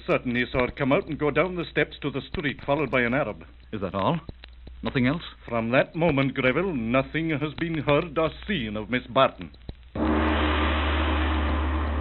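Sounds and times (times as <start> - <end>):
gong ringing: 10.0 - 12.0.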